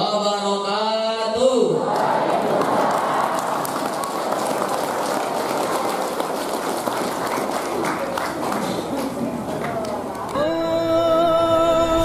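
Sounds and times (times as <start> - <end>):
audience applauding: 1.9 - 10.4.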